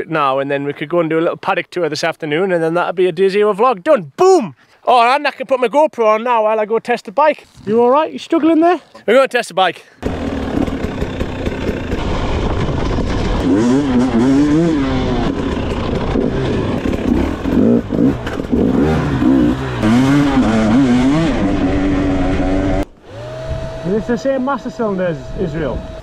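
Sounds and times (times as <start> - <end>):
motorcycle engine revving: 10.0 - 26.0.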